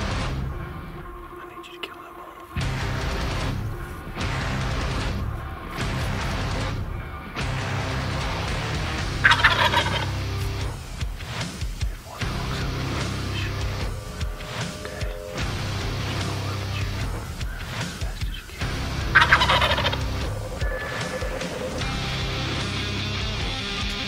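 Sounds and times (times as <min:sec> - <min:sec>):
turkey gobbling: 0:09.2 - 0:10.2, 0:13.3 - 0:15.4, 0:16.1 - 0:22.6.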